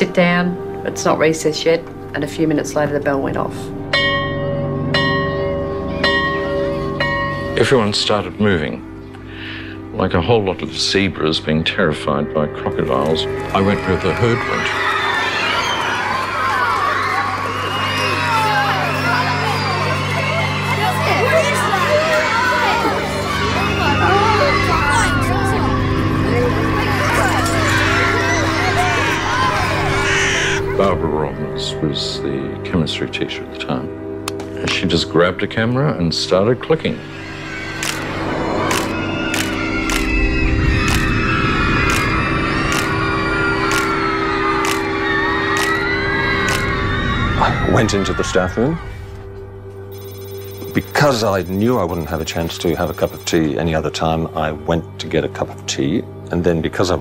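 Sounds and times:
low sustained music: 0.0 - 46.9, 47.7 - 57.0
school bell ringing: 3.9 - 8.8, 12.5 - 30.2, 49.9 - 54.0
children shouting and shrieking: 5.4 - 7.0, 13.3 - 30.8, 37.1 - 49.3
man speaking: 50.7 - 54.5.

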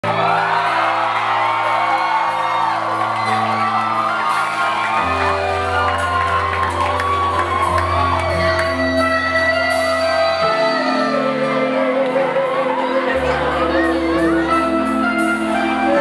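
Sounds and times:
bass guitar: 0.0 - 16.0
crowd whooping and cheering: 0.0 - 16.0
drums: 0.0 - 16.0.

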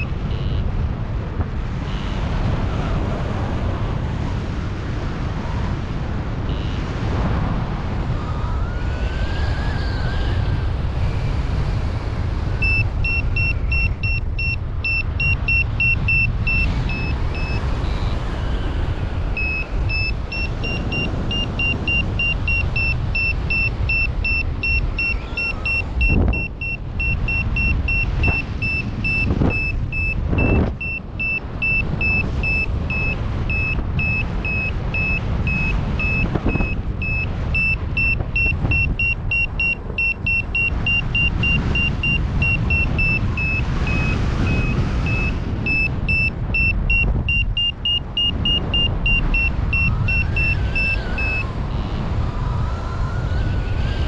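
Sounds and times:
variometer beeping: 0.0 - 0.7, 6.5 - 6.8, 12.4 - 52.0
wind rumbling on microphone: 0.0 - 54.0.

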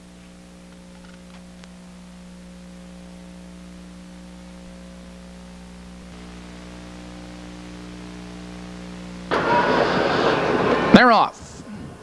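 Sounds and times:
electrical mains hum: 0.0 - 12.0
loud rush of noise: 8.8 - 12.0.

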